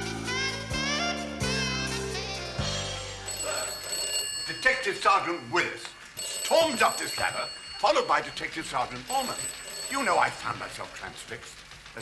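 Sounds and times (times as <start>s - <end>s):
telephone ringing: 2.6s - 11.4s.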